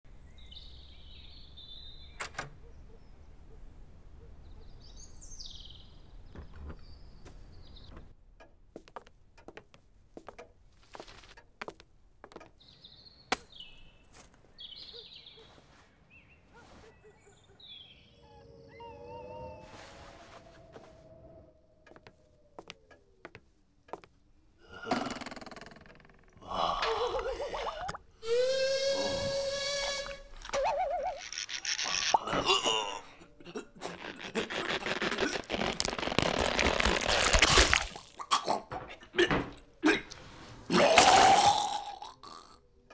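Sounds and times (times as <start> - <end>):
long strained cry: 28.2 - 30.4.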